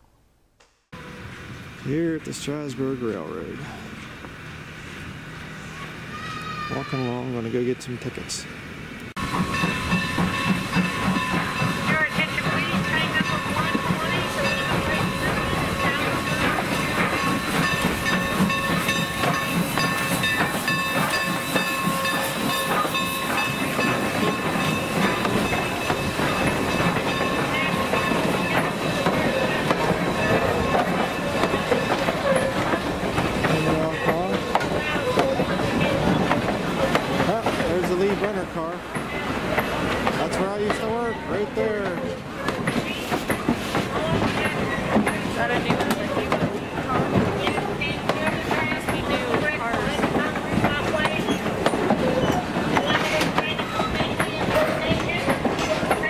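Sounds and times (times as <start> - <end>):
steam train rolling past: 1.0 - 56.0.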